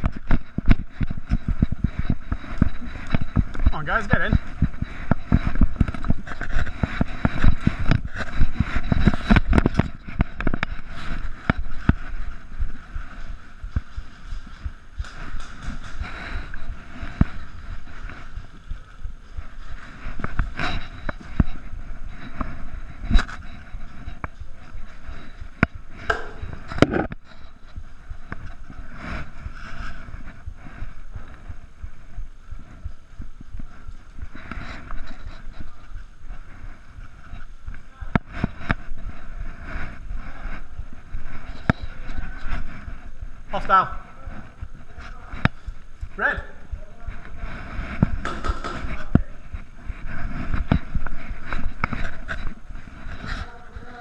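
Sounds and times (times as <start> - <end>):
scattered clicks and knocks: 0.0 - 12.4, 25.4 - 27.5, 48.0 - 49.2
footsteps: 0.0 - 54.0
gear rustling against camera: 0.0 - 54.0.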